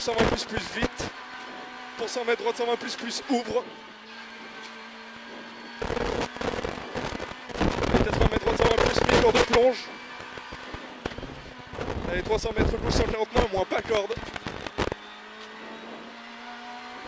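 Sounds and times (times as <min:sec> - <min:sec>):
rally car engine at speed: 0:00.0 - 0:17.0.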